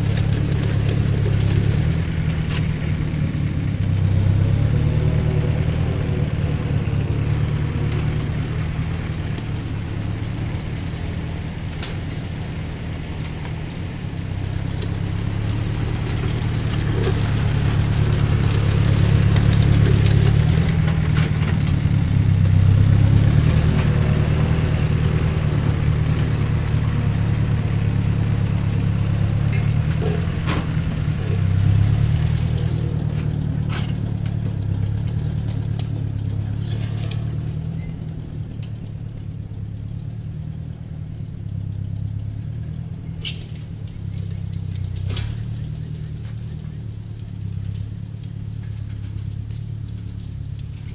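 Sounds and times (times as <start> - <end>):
tractor engine running: 0.0 - 50.9.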